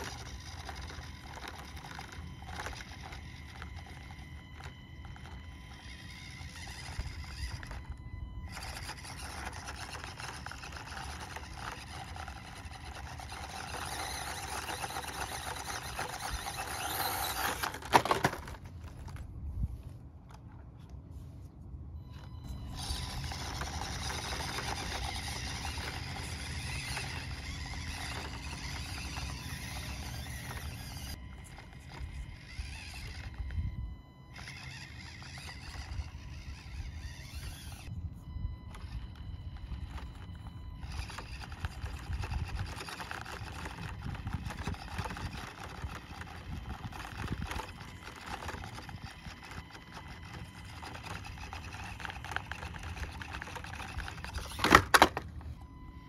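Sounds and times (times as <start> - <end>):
tires scrabbling on rock: 0.0 - 21.2, 22.1 - 33.7, 34.3 - 37.9, 38.7 - 55.4
small electric motor whining: 0.0 - 56.0.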